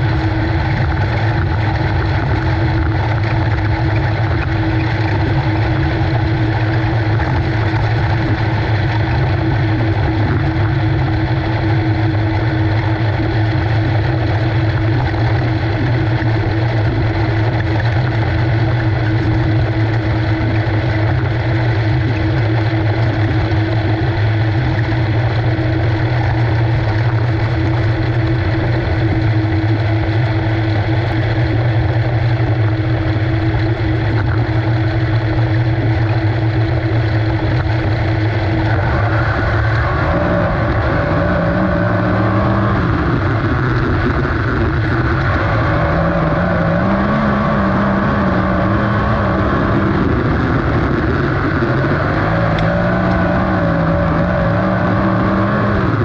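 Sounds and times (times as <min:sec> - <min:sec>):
race car engine running: 0:00.0 - 0:56.0.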